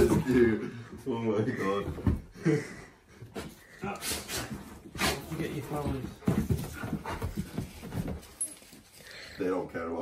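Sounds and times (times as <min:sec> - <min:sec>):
dogs panting: 0:02.4 - 0:09.4.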